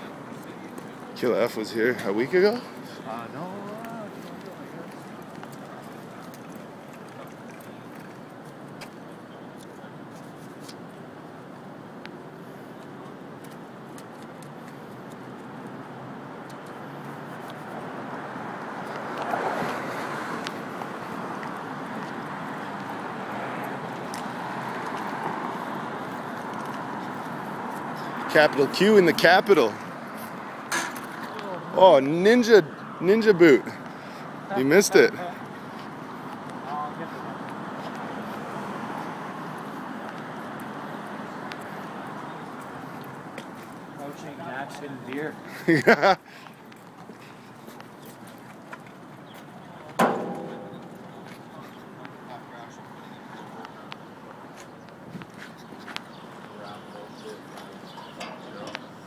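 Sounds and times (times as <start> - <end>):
distant traffic: 0.0 - 59.0
sharp knock with ringing tail: 50.0 - 51.3.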